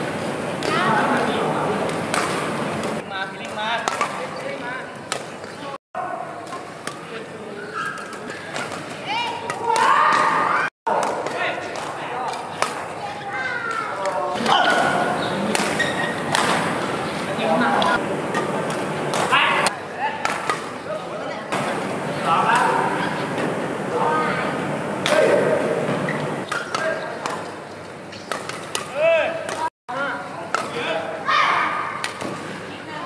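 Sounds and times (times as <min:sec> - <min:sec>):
rackets hitting shuttlecock: 0:00.6 - 0:05.6, 0:06.4 - 0:20.8, 0:21.5 - 0:23.7, 0:25.0 - 0:29.7, 0:30.4 - 0:31.1, 0:31.9 - 0:32.6
players calling out: 0:12.8 - 0:19.9.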